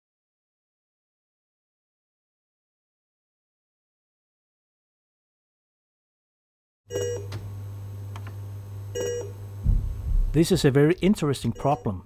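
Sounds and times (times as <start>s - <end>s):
steady low hum: 7.5s - 11.8s
low thump: 9.6s - 10.6s
short electronic beeps: 11.6s - 12.0s.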